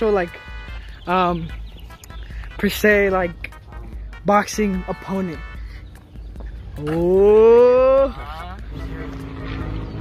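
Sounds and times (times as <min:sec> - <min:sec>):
low engine hum: 0:05.4 - 0:10.0.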